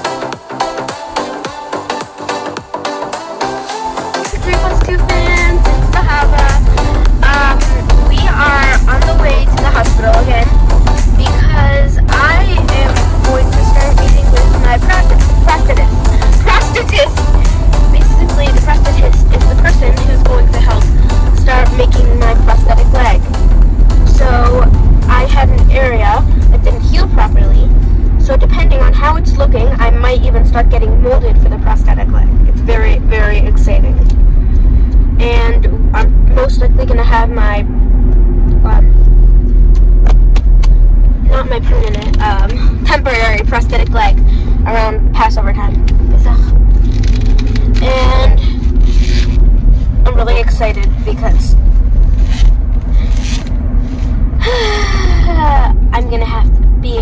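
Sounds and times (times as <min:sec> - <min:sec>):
car rumble inside cabin: 0:04.2 - 0:57.0
girl singing: 0:04.3 - 0:23.3.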